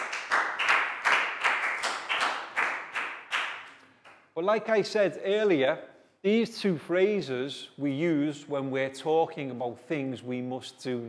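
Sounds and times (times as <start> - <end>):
rhythmic clapping: 0.0 - 4.4.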